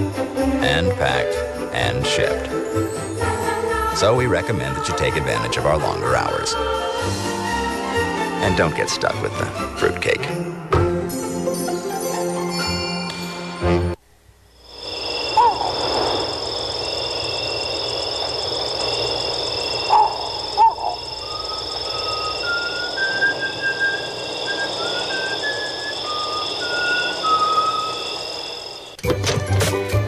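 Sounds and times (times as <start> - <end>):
high insect trilling: 14.6 - 29.0
high whistle-like notes: 14.8 - 29.0
short chirping calls: 14.9 - 29.0.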